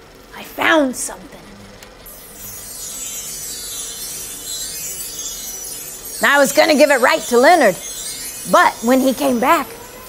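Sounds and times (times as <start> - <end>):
high shimmering chime music: 2.1 - 10.0.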